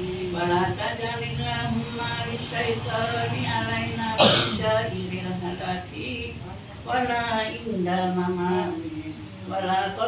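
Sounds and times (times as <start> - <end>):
woman chanting prayers: 0.0 - 10.0
loud cough: 4.2 - 4.6.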